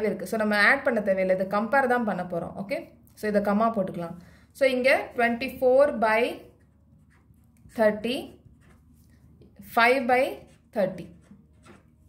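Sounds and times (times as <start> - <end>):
pen scratching on paper: 6.2 - 12.0.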